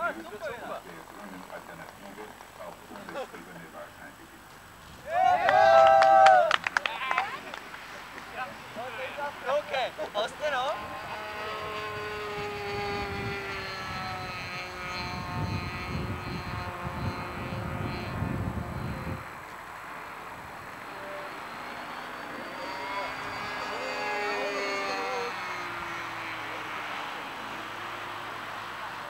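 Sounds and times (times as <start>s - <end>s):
model aeroplane engine buzz: 0.0s - 4.9s, 7.1s - 29.0s.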